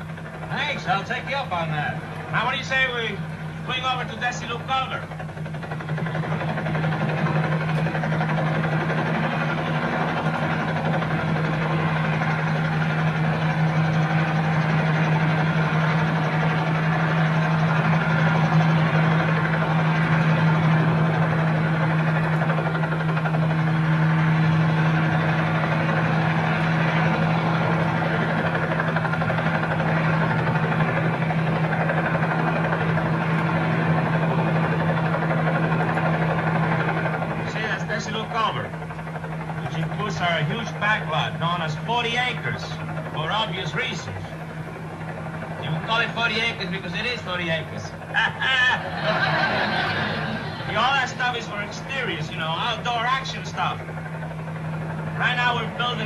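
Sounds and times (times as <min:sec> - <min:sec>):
aircraft engine drone: 0:00.0 - 0:56.0.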